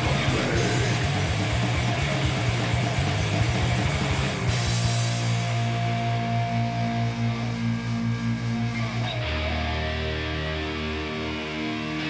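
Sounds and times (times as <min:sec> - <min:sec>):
bass guitar: 0:00.0 - 0:12.0
distorted electric guitars: 0:00.0 - 0:12.0.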